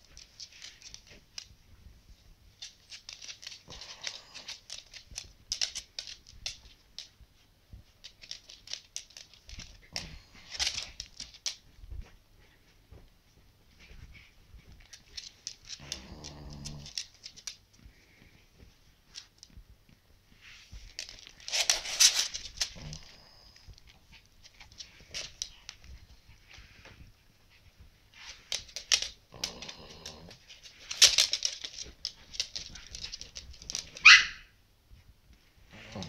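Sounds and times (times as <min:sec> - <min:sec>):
small clicks and snuffles: 0:02.6 - 0:07.1.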